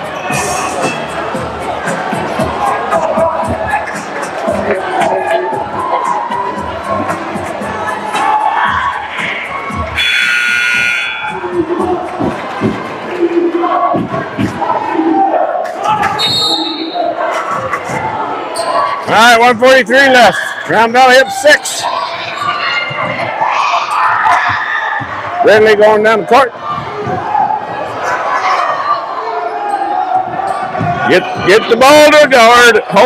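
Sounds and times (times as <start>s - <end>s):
music playing: 0.0s - 24.4s
gymnasium crowd noise: 0.0s - 33.0s
arena horn: 10.0s - 11.4s.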